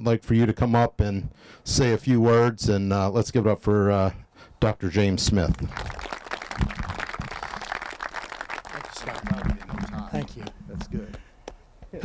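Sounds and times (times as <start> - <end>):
crowd applauding: 5.5 - 10.6.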